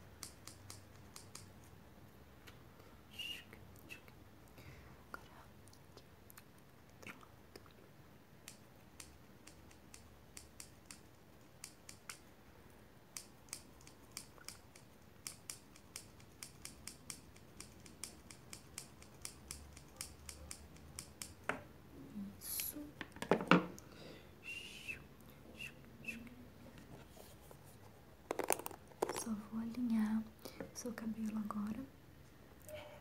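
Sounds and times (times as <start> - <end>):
scissors snipping hair: 0.2 - 1.5, 8.4 - 11.0, 13.2 - 21.4.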